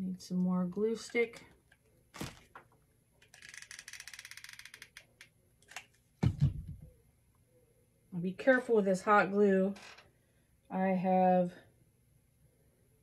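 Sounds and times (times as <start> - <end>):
glue gun ratcheting rattle: 3.2 - 5.8.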